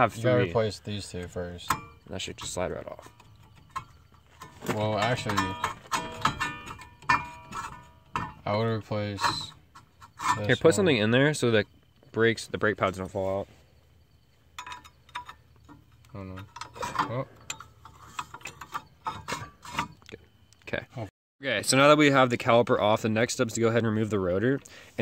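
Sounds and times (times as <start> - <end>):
metal brake parts clinking: 0.7 - 10.8, 14.5 - 20.4.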